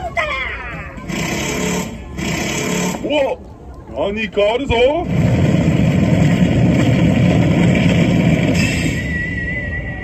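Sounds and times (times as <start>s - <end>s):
machine-like rumbling: 4.9s - 9.5s.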